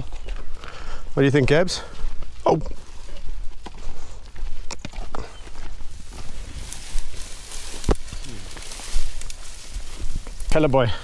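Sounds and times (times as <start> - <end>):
footsteps on gravel: 0.0 - 11.0
dry grass swishing: 6.0 - 10.6.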